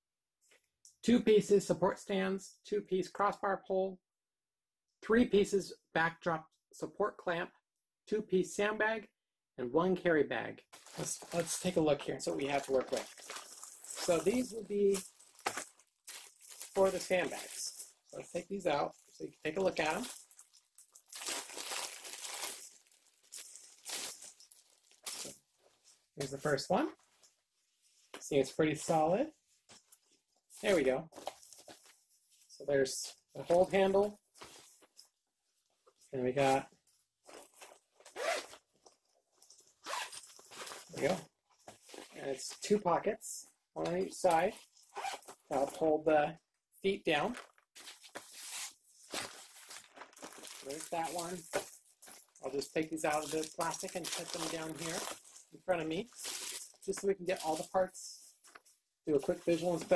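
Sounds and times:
fabric bag rustling: 10.8s - 26.1s, 47.3s - 57.8s, 59.2s - 59.9s
plastic packaging crinkling and tearing: 12.4s - 17.6s, 19.5s - 25.4s, 47.4s - 52.3s, 53.0s - 57.8s.

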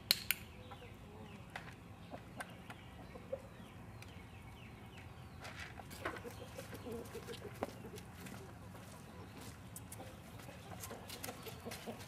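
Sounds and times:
hens clucking: 0.6s - 3.8s, 5.8s - 12.0s.

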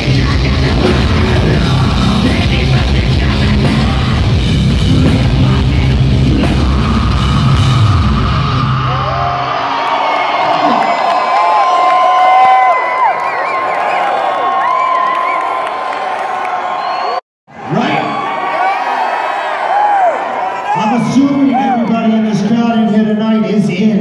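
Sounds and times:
heavy metal drums and bass: 0.0s - 9.1s
concert crowd cheering and yelling: 0.0s - 24.0s.

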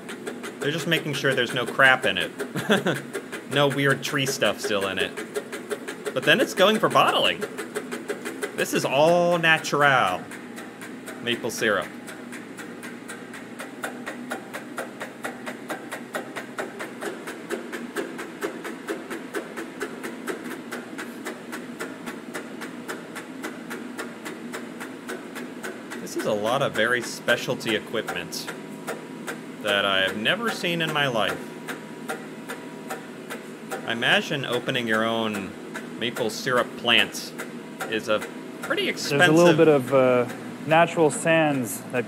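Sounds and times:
rapid mechanical clicking: 0.0s - 42.0s
steady low hum: 0.0s - 42.0s
person speaking: 0.6s - 5.2s, 6.1s - 7.4s, 8.6s - 10.4s, 11.2s - 12.0s, 26.0s - 28.5s, 29.6s - 31.4s, 33.9s - 42.0s.

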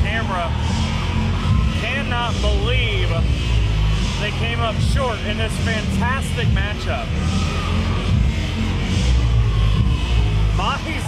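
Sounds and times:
music with heavy bass: 0.0s - 11.0s.

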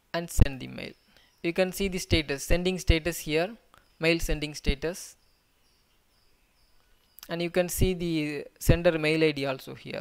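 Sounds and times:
faint high-pitched tones: 0.0s - 9.8s.

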